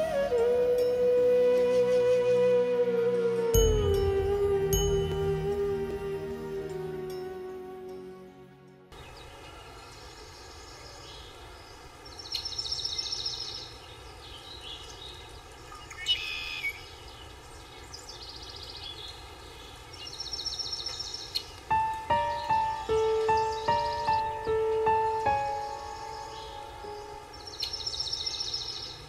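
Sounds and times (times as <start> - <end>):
soft music with struck notes: 0.0 - 9.0, 21.7 - 27.7
steady hiss: 2.8 - 8.1, 9.0 - 29.0
bird chirping call: 3.6 - 8.4, 20.0 - 29.0.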